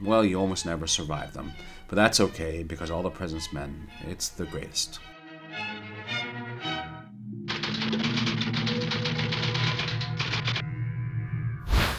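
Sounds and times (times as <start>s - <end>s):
fast repeated music strokes: 7.5s - 10.6s.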